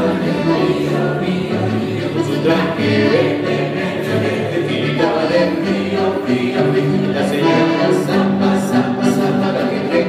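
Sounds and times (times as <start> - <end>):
group singing together: 0.0 - 10.0
music: 0.0 - 10.0.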